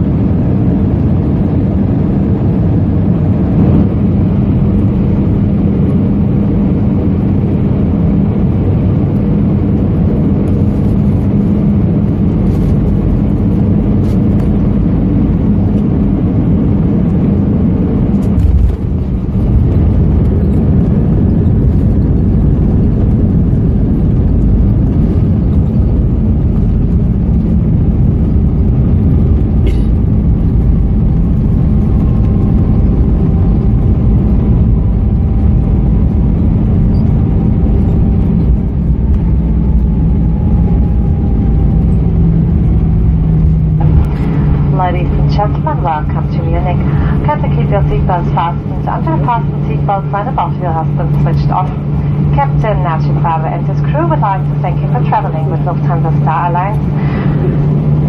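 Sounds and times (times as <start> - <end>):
airplane cabin engine rumble: 0.0 - 58.0
airplane touchdown on runway: 0.0 - 58.0.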